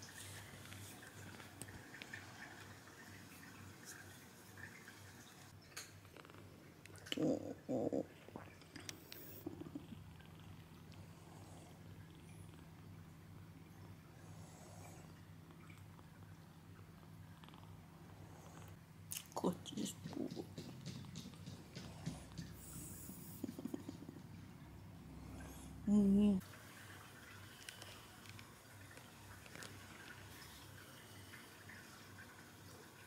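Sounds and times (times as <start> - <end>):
faint low purr: 6.1 - 13.1, 19.6 - 26.4.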